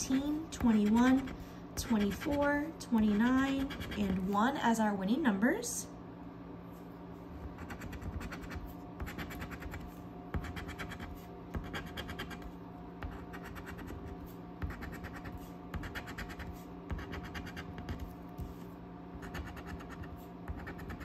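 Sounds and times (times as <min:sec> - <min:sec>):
coin scratching lottery ticket: 0:10.4 - 0:12.5, 0:13.1 - 0:18.1, 0:19.2 - 0:21.0.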